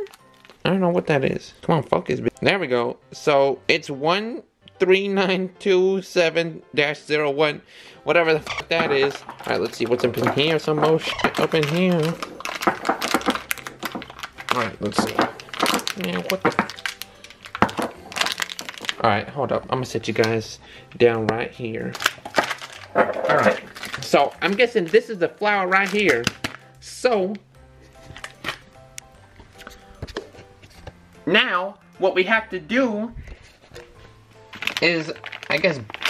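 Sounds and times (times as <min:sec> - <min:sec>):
plastic bag crinkling: 0:00.0 - 0:00.6, 0:08.4 - 0:20.4, 0:21.8 - 0:26.7, 0:34.5 - 0:36.0
quiet background music: 0:00.0 - 0:36.0.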